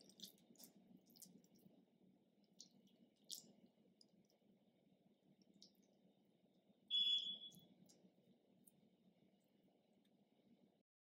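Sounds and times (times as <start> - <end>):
hands shaping wet dough: 0.0 - 10.8
low room hum: 0.0 - 10.9.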